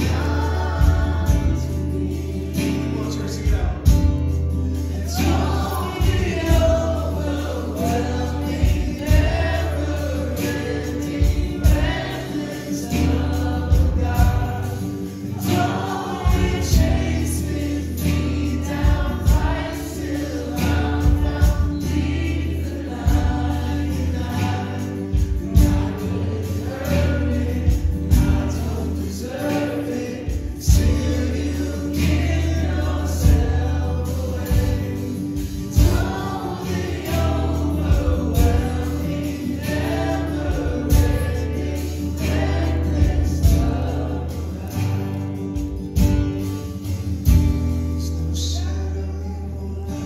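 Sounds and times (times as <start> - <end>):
live worship band playing: 0.0 - 50.0
people singing: 0.0 - 50.0.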